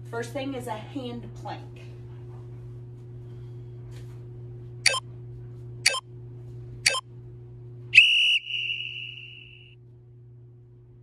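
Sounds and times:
timer long tone: 0:08.0 - 0:09.8.

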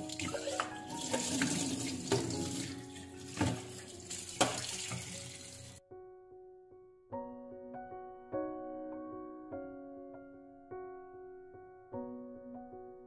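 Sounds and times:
tap water running into sink: 0:00.0 - 0:05.8.

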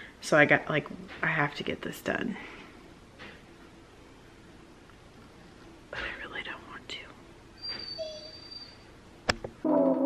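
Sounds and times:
dog whining: 0:07.6 - 0:08.9.

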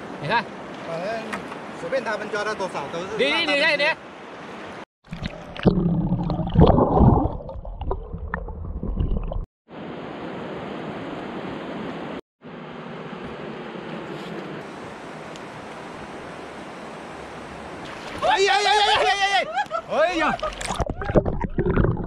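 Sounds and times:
flowing river water: 0:00.0 - 0:08.0, 0:09.8 - 0:22.0
underwater churning and bubbling: 0:05.0 - 0:09.5, 0:20.6 - 0:22.0.

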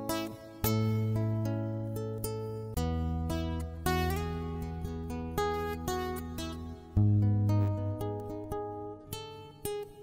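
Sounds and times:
acoustic guitar picked melody: 0:00.0 - 0:10.0.

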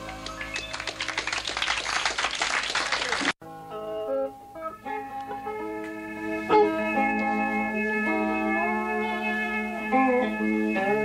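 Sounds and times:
audience applauding: 0:00.0 - 0:03.4
electric guitar single notes: 0:03.4 - 0:11.0
rock band chord ringing: 0:03.4 - 0:11.0.

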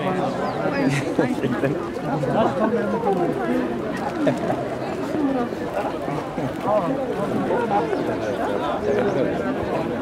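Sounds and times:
large crowd chattering: 0:00.0 - 0:10.0.

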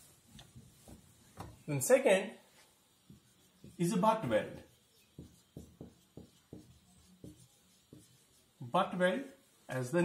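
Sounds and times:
marker pen writing on whiteboard: 0:00.1 - 0:01.7, 0:02.6 - 0:09.7.

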